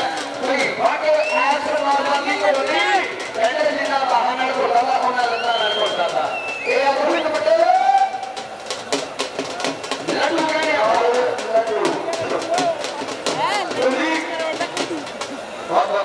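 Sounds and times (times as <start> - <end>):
men calling out: 0.0 - 8.4, 10.1 - 15.5.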